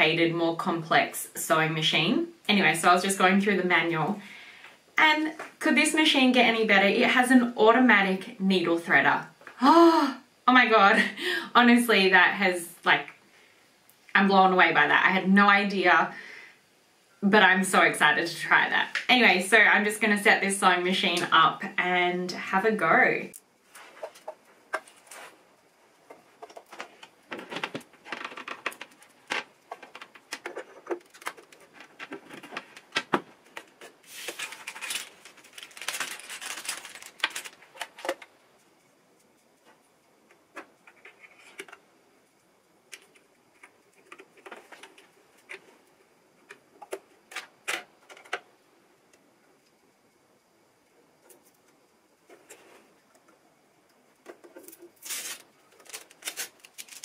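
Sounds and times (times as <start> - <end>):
rustling: 23.6 - 41.8, 54.3 - 57.0
cord and pedal rattling: 26.4 - 33.3.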